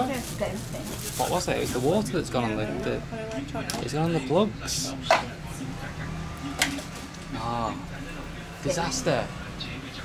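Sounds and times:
faint low voices: 0.0 - 10.0.

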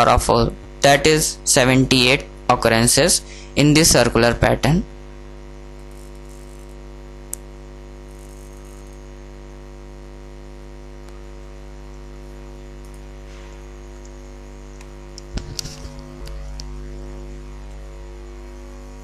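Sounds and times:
electrical mains hum: 0.0 - 19.0.

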